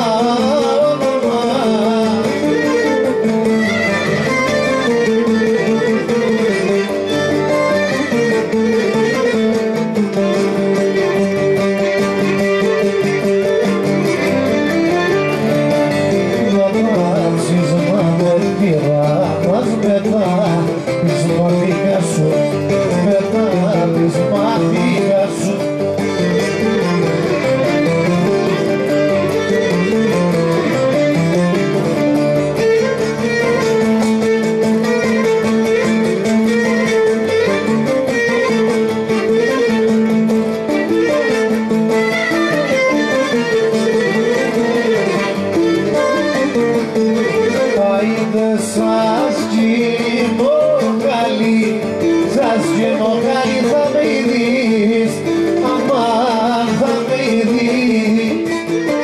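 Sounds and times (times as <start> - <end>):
bowed string melody: 0.0 - 59.0
plucked string accompaniment: 0.0 - 59.0.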